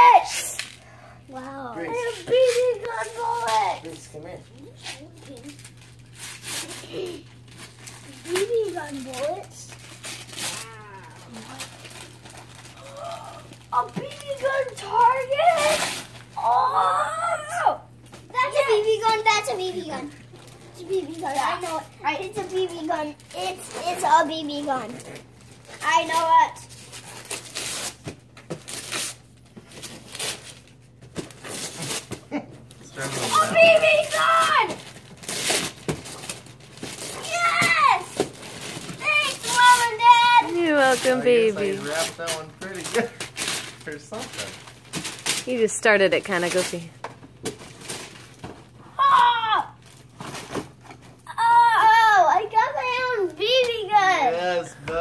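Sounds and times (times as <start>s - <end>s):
wrapping paper rustling and tearing: 0.0s - 54.0s
young child vocalizing: 10.4s - 11.6s, 12.8s - 13.6s, 16.4s - 17.8s.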